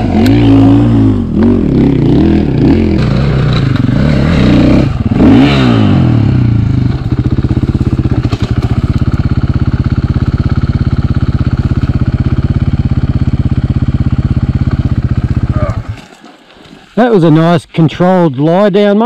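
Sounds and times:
dirt bike engine revving and idling: 0.0s - 16.0s.

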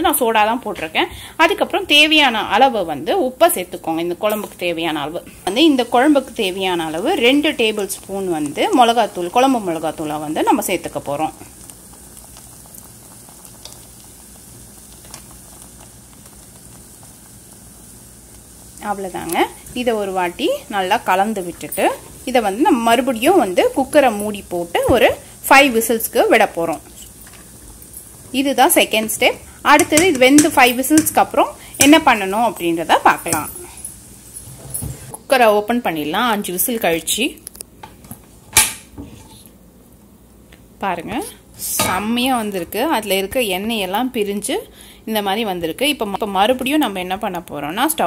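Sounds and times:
woman speaking: 0.0s - 11.5s, 18.8s - 27.1s, 28.4s - 33.8s, 35.2s - 37.4s, 40.8s - 48.0s
soup bubbling and sizzling: 3.6s - 36.6s.

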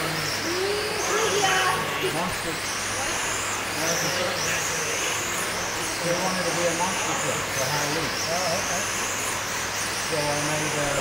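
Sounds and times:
murmur of voices: 0.0s - 11.0s
rc car motors whining: 0.0s - 11.0s.

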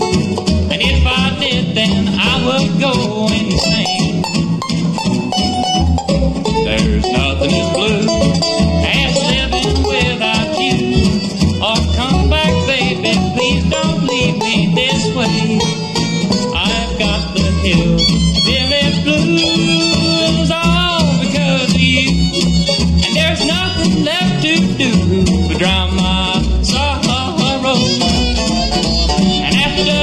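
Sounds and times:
acoustic guitar: 0.0s - 30.0s
banjo picking: 0.0s - 30.0s
fiddle: 0.0s - 30.0s
mandolin: 0.0s - 30.0s
upright bass: 0.0s - 30.0s.

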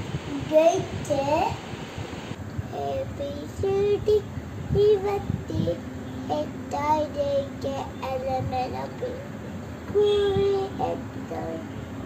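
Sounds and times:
child singing: 0.3s - 1.6s, 2.7s - 9.3s, 9.9s - 11.7s.

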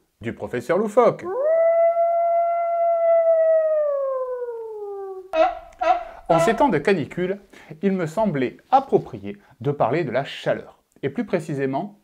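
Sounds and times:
man howling like a wolf: 1.2s - 6.6s.

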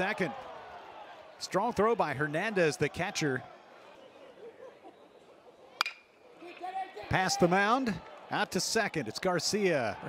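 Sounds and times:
stadium background: 0.0s - 10.0s
metal bat hitting ball: 5.8s - 6.1s.

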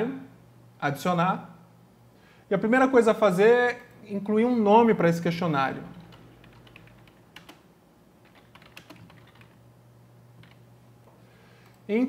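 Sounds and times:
keyboard keystrokes: 8.3s - 9.6s.

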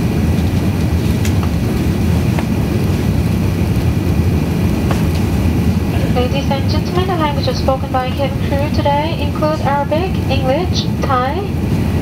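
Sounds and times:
airplane cabin engine roar: 0.0s - 12.0s.

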